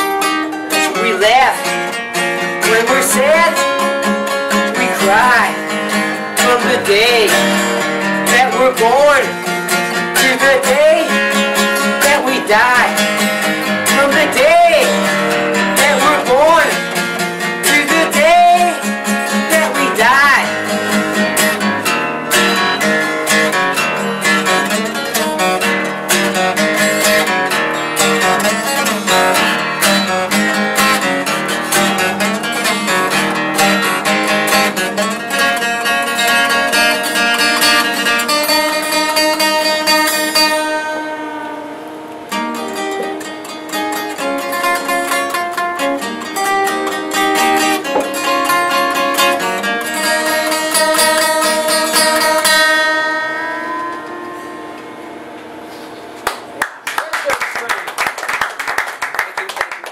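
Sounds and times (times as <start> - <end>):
acoustic guitar playing: 0.0 - 56.8.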